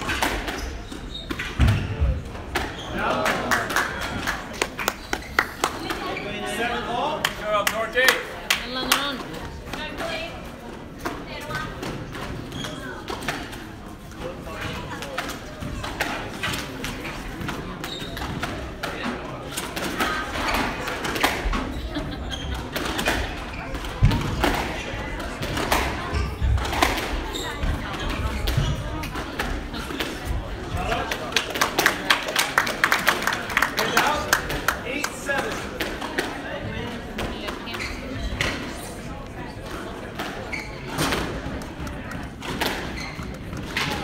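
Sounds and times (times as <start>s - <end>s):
squash ball hitting rackets and walls: 0.0s - 4.0s, 22.7s - 31.8s, 39.6s - 44.0s
spectators murmuring: 0.0s - 44.0s.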